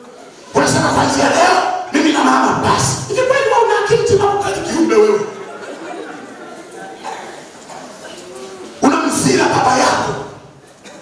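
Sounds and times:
congregation murmuring: 0.0 - 11.0
man preaching into a microphone: 0.5 - 5.4, 8.8 - 10.6.

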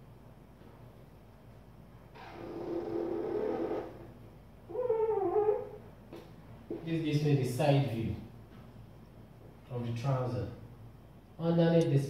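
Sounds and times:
marker squeaking on whiteboard: 2.1 - 4.1, 4.7 - 5.8.

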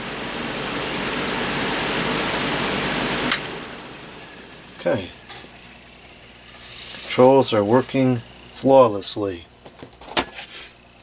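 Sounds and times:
electric fan whirring: 0.0 - 11.0.

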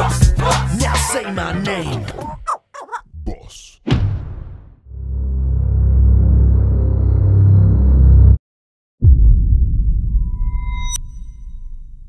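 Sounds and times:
deep bass boom: 3.9 - 8.4, 9.0 - 12.0
high pure ping-like tone: 10.3 - 12.0.

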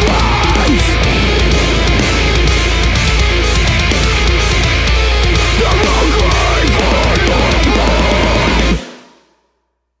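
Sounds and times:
metal band final chord: 0.0 - 8.8.

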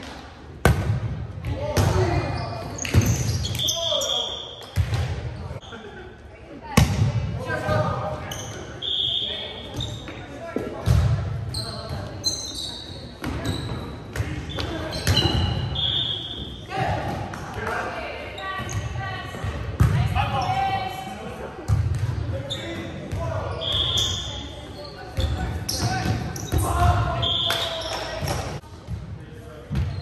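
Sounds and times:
sneakers squeaking on hardwood: 2.0 - 5.7, 9.6 - 10.3, 11.5 - 16.6, 22.5 - 28.5.

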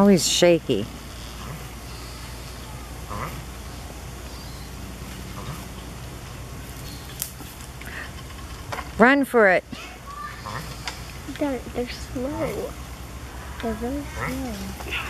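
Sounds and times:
low background hum: 0.0 - 15.0
tortoise short calls: 1.0 - 6.0, 9.8 - 11.3.

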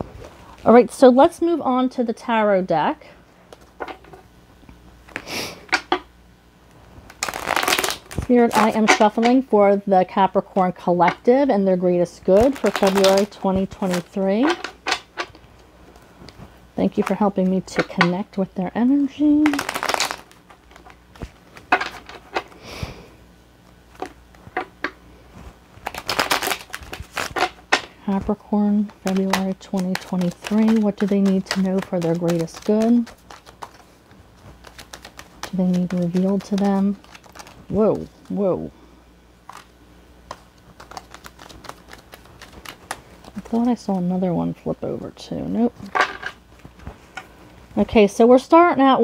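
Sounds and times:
card deck rustle: 7.0 - 9.5, 12.2 - 15.4, 16.3 - 22.6, 23.9 - 38.4, 39.5 - 43.9.

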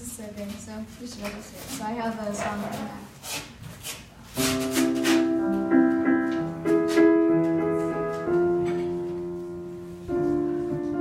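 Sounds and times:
piano playing slow held chords: 4.4 - 11.0.

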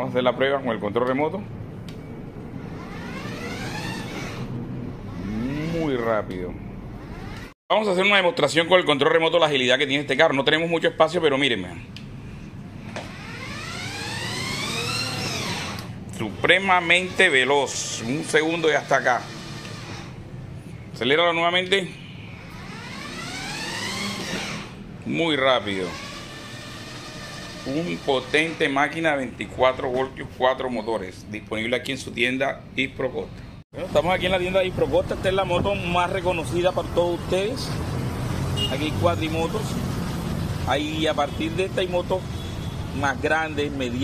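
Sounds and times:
electric motors whining: 1.9 - 6.1, 6.9 - 7.6, 12.8 - 20.5, 22.3 - 29.1.

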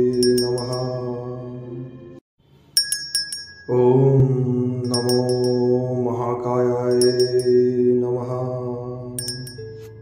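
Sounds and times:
high bell-like chimes: 0.0 - 1.0, 2.6 - 4.0, 4.8 - 5.8, 6.9 - 7.6, 9.2 - 10.0
man chanting: 3.7 - 9.2.

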